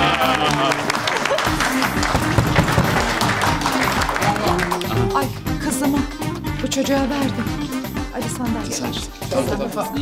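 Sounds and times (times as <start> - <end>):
people clapping: 0.0 - 5.4
background music: 0.0 - 10.0.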